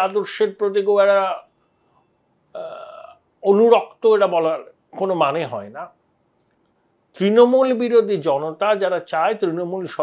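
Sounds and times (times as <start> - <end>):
man speaking: 0.0 - 1.5, 2.6 - 6.0, 7.2 - 10.0.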